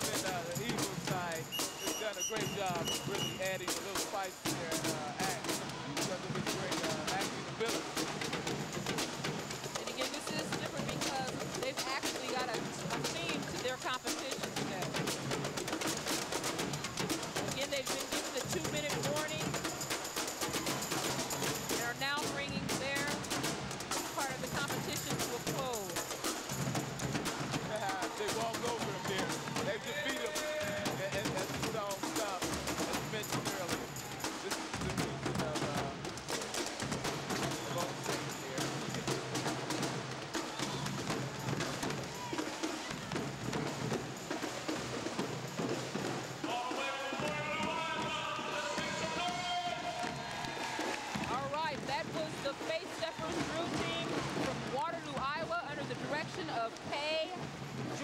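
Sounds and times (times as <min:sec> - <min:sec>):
marching snare and bass drums: 0:00.0 - 0:58.0
voices shouting: 0:27.2 - 0:31.6, 0:40.3 - 0:43.6, 0:46.3 - 0:51.5.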